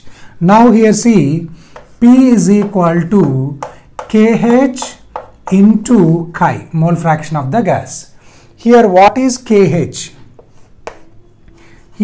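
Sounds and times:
chalk tapping on chalkboard: 0:01.6 - 0:05.9, 0:10.4 - 0:11.2
faint chalk scratching: 0:01.7 - 0:05.8, 0:10.1 - 0:12.0.

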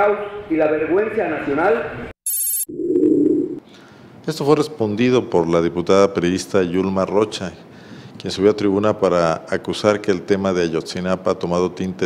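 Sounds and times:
bright high electronic chirp: 0:02.2 - 0:03.6.

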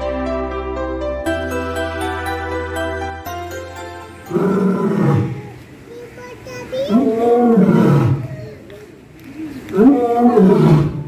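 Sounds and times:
lion roaring: 0:04.3 - 0:05.6, 0:06.9 - 0:08.4, 0:09.7 - 0:11.0.

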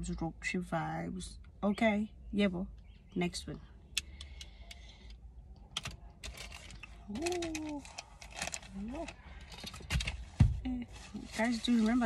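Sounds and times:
plastic frames clicking and rattling: 0:05.7 - 0:10.5.

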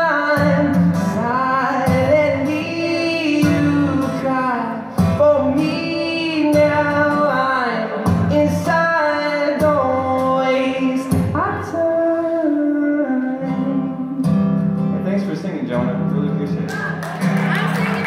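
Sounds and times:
man singing: 0:00.0 - 0:14.6
strummed acoustic guitar: 0:00.0 - 0:18.0.

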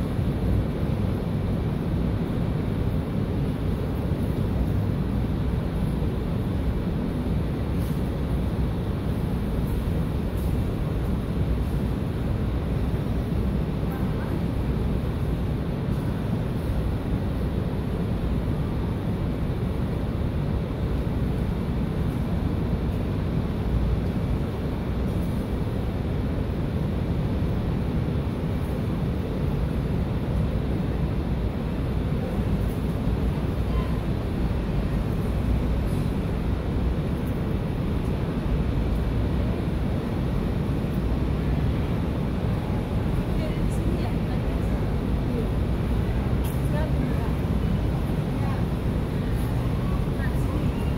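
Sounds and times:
low rumbling background noise: 0:00.0 - 0:50.9.

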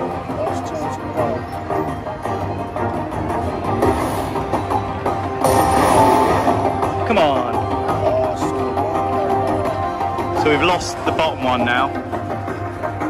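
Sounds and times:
slot machine bonus music: 0:05.4 - 0:07.5.

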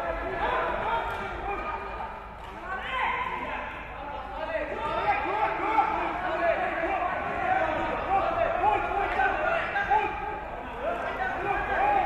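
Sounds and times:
men shouting and calling: 0:04.7 - 0:12.0.

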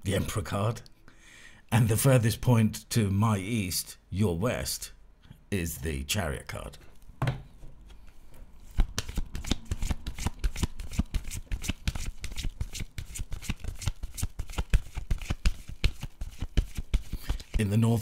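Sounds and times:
cards being shuffled: 0:07.8 - 0:17.7.

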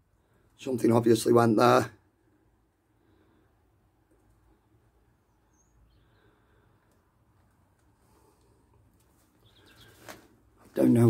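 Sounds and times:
faint high chirp: 0:05.3 - 0:06.4, 0:09.4 - 0:10.1.

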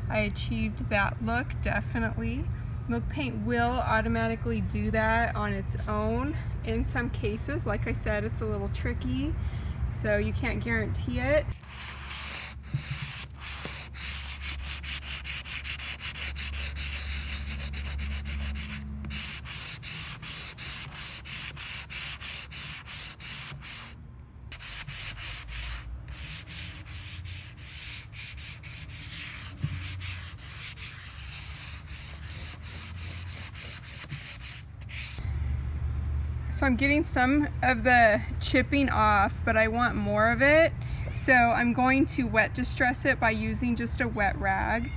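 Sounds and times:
sanding sponge scraping wood: 0:11.6 - 0:35.2.

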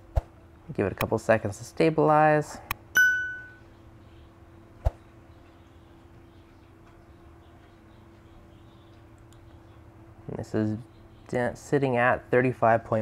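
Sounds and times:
faint steady hum: 0:00.0 - 0:13.0
bell-like ding: 0:03.0 - 0:03.6.

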